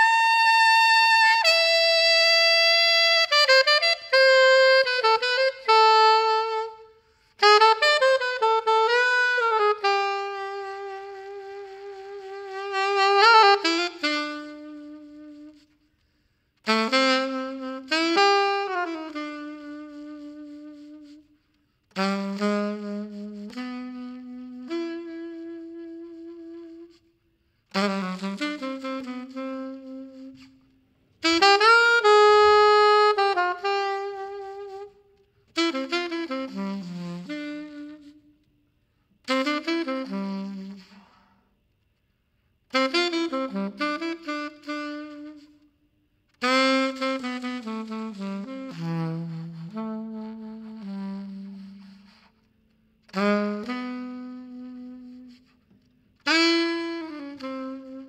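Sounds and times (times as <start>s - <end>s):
alto saxophone melody: 0.0s - 58.0s.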